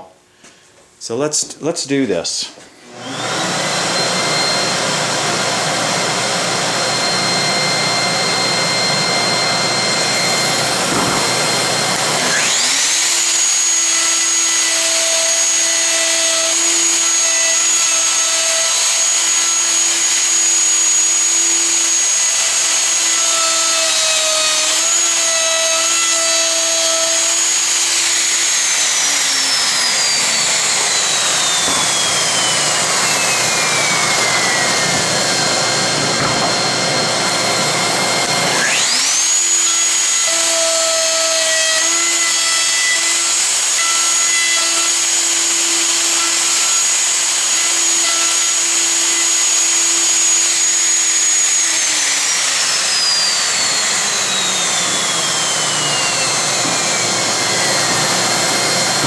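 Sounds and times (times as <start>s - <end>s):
router high whine: 2.0s - 59.0s
dust extractor running: 2.8s - 40.6s, 44.8s - 59.0s.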